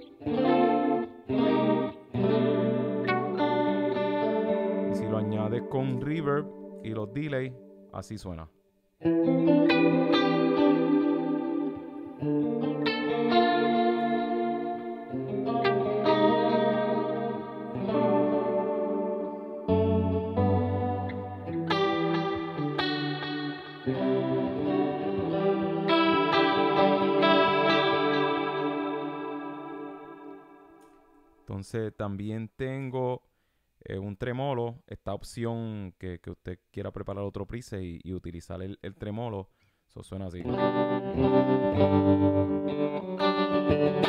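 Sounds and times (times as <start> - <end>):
electric guitar strummed chords: 0.0 - 7.9, 9.0 - 31.0, 40.4 - 44.0.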